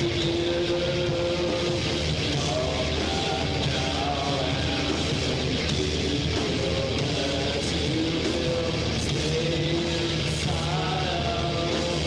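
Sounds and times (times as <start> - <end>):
distorted electric guitars: 0.0 - 12.0
live rock band playing: 0.0 - 12.0.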